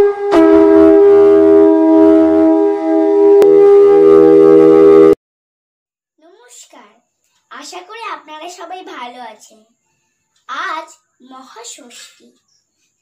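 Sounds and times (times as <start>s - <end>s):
sustained horn-like chords: 0.0s - 5.2s.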